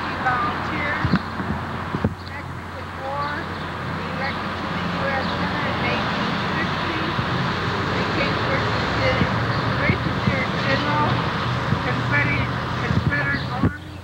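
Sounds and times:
faint voices: 0.0 - 14.0
street traffic: 0.0 - 14.0.

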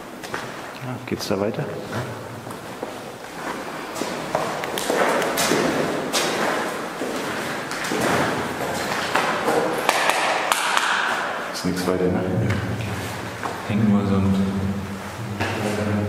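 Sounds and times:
footsteps on concrete: 1.9 - 9.9.

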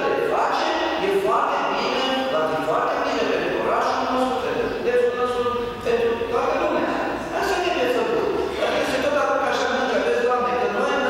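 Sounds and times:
man talking into a microphone: 0.0 - 11.0.

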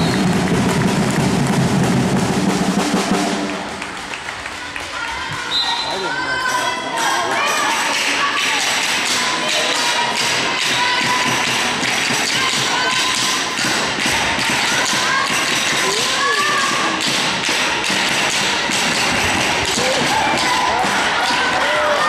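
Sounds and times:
players shouting: 5.2 - 22.0.

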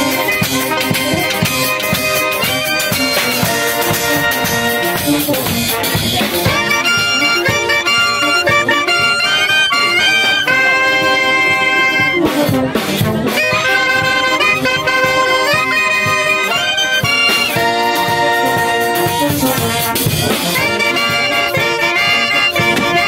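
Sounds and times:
clarinets and saxophones playing melody: 0.0 - 23.0
congas: 0.0 - 23.0
drum kit keeping a steady beat: 0.0 - 23.0.

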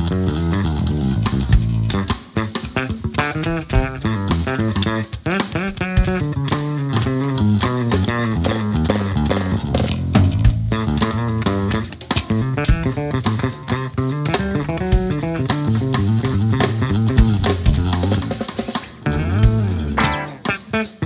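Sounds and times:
drum kit beat: 0.0 - 21.0
electric bass: 0.0 - 21.0
electric guitar: 0.0 - 21.0.

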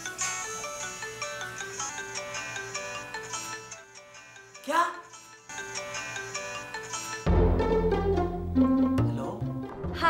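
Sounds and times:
mobile phone ringtone melody: 0.0 - 7.3.

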